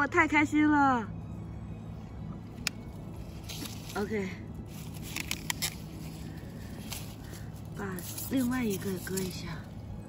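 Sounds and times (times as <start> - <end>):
dry grass rustling: 2.6 - 9.9.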